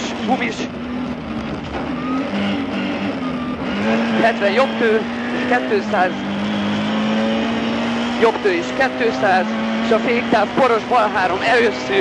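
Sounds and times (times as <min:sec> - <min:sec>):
car engine running at speed: 0:00.0 - 0:12.0
road noise: 0:00.0 - 0:12.0.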